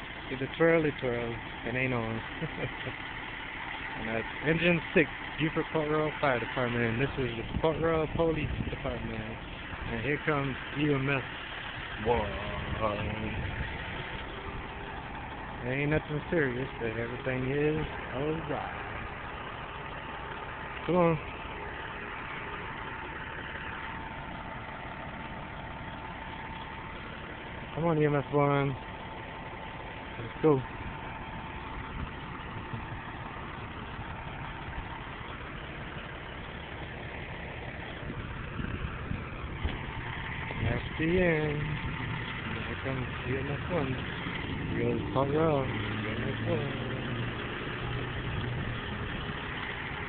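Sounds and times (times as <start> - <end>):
vehicle engine idling: 0.0 - 50.0.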